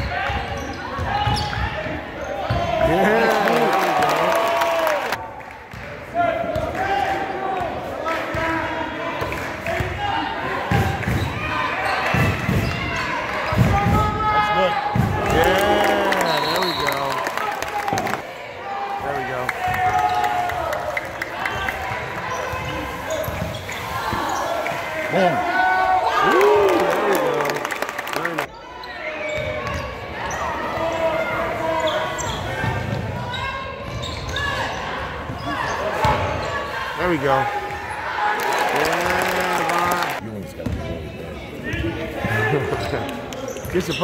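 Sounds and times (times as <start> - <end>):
sneakers squeaking: 0.0 - 3.3, 21.0 - 25.0, 28.7 - 36.7, 40.6 - 44.0.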